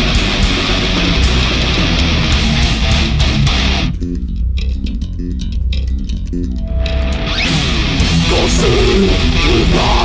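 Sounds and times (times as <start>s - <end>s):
death metal band: 0.0s - 4.1s, 5.9s - 10.0s
chugging distorted guitar riff: 0.0s - 10.0s.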